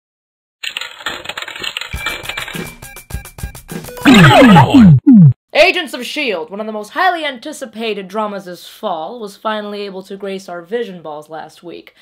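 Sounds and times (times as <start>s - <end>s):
coin rattling through coin slot: 0.6s - 2.6s.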